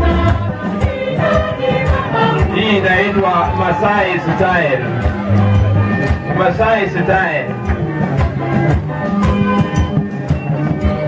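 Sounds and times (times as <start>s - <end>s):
choir singing church song: 0.0s - 4.8s
accompaniment with steady beat: 0.0s - 11.0s.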